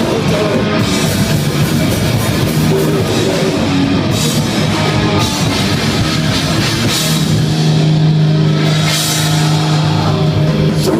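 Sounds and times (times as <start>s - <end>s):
heavy metal band playing live: 0.0s - 10.9s.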